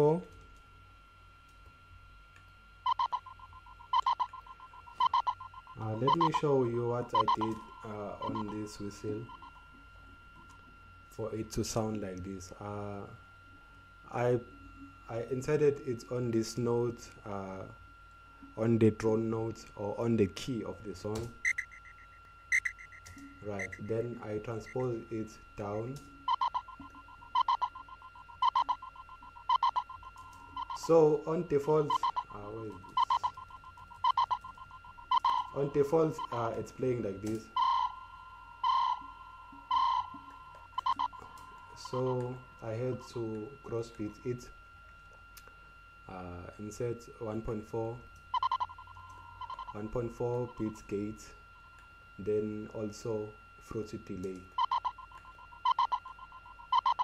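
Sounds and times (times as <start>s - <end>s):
looped whistle chirps: 2.8s - 9.6s, 21.4s - 36.6s, 37.4s - 42.5s, 48.3s - 51.2s, 54.4s - 57.0s.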